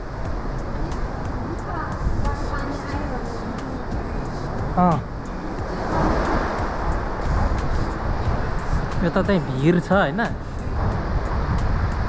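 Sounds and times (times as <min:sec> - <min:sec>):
sea surf washing through rocks: 0:00.0 - 0:12.0
wind rumbling on microphone: 0:00.0 - 0:12.0.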